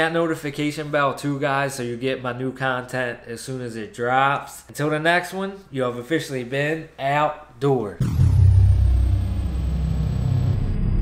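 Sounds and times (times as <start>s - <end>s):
deep rumble: 8.0s - 11.0s
high tone gliding down: 8.0s - 11.0s.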